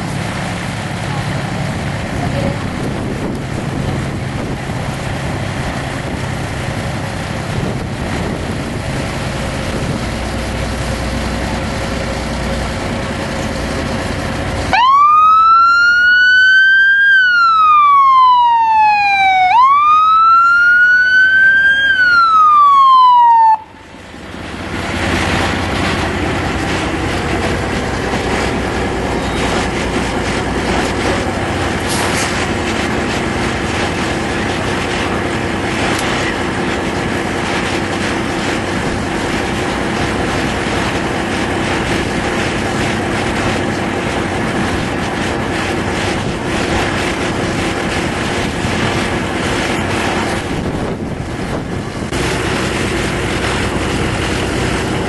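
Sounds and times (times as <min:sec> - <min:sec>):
steady noisy background: 0:00.0 - 0:55.0
siren wailing: 0:14.7 - 0:24.0.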